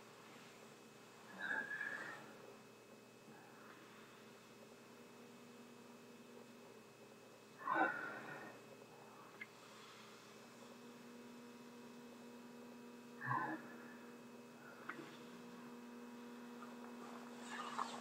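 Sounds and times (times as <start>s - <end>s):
faint electrical hum: 0.0s - 18.0s.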